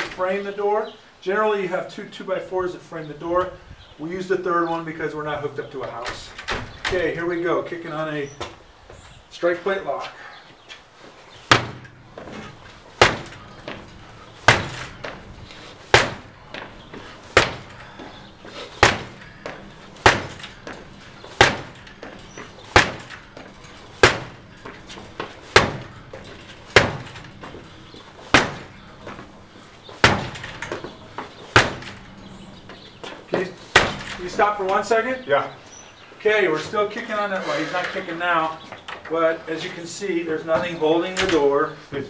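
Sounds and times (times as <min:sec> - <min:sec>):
door rattling in frame: 0:05.7 - 0:07.2, 0:11.5 - 0:35.0, 0:40.5 - 0:41.6
door being kicked: 0:06.0 - 0:07.2, 0:11.5 - 0:34.6.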